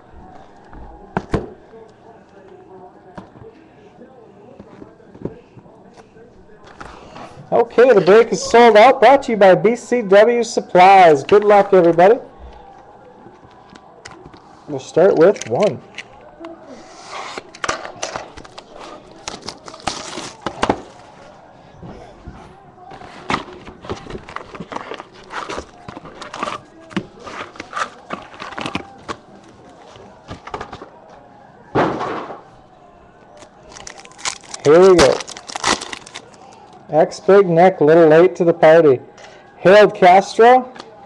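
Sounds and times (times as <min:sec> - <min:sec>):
foil wrappers tearing and crinkling: 0:18.4 - 0:20.4, 0:33.6 - 0:36.4
cards shuffling: 0:23.0 - 0:29.5.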